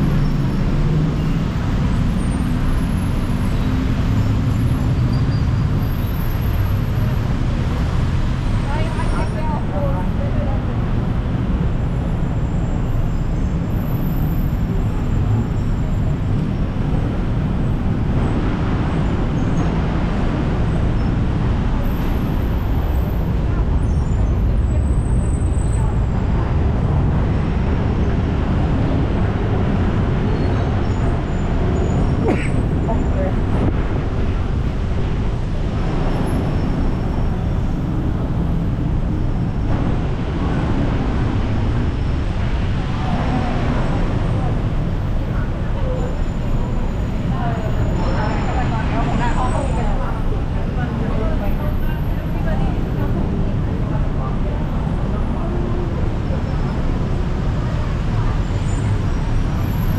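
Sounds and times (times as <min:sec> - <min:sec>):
low rumble of cars and motorbikes: 0:00.0 - 0:59.9.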